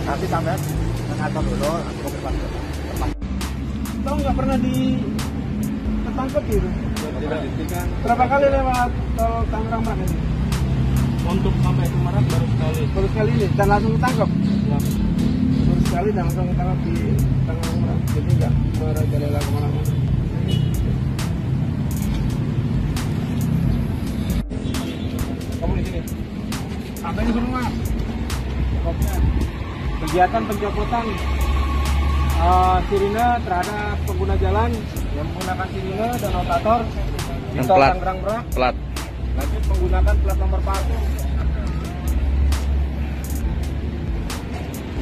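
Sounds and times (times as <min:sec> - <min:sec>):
low rumble of motor vehicles: 0:00.0 - 0:45.0.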